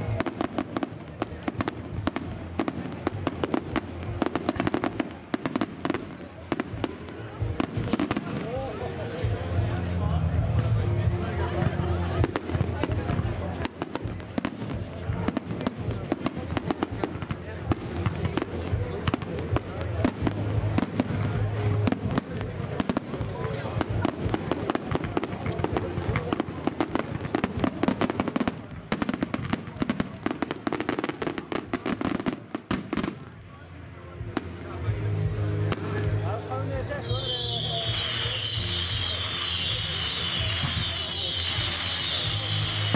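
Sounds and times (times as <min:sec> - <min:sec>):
fireworks bursting and crackling: 0:00.0 - 0:42.9.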